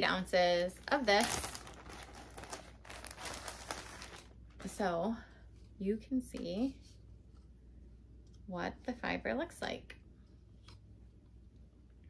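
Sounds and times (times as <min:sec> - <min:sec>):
wool fiber rustling and crinkling: 0:00.0 - 0:07.5.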